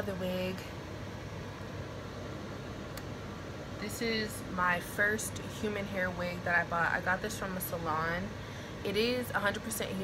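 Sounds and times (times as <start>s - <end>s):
room noise hiss: 0.0s - 10.0s
faint click: 2.9s - 3.1s.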